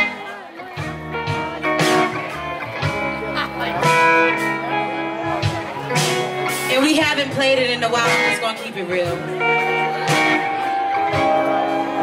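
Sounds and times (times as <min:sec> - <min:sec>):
blues-rock band playing: 0:00.0 - 0:12.0
electric guitar chords: 0:00.0 - 0:12.0.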